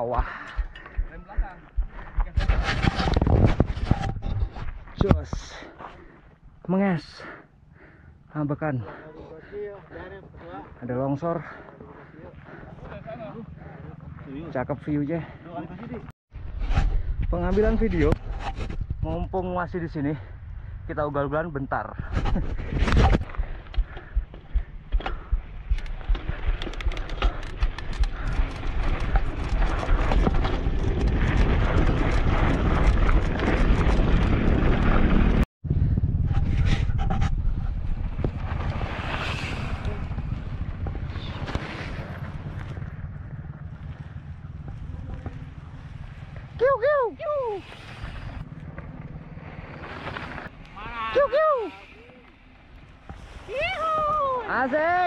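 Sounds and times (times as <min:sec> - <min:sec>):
wind buffeting the microphone: 0:00.2 - 0:05.2, 0:22.0 - 0:48.5
bike clattering over stones: 0:25.0 - 0:35.4
bikes rolling past on gravel: 0:25.6 - 0:35.4, 0:37.5 - 0:55.0
short shouts: 0:50.8 - 0:52.0.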